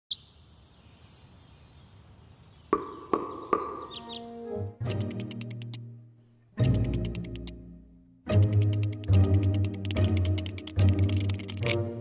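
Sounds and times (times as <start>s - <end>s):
bird chirping: 0.1s - 5.8s
wooden knocks with ringing tone: 2.8s - 4.0s.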